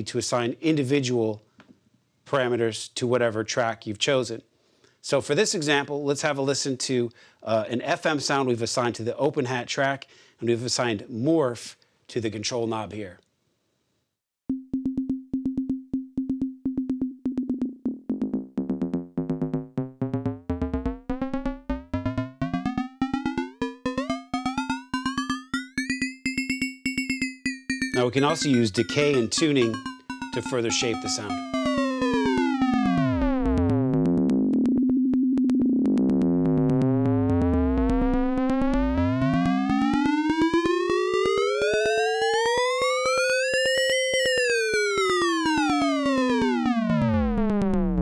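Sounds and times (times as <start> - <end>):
drum machine open hi-hat pattern: 14.5 - 48.0.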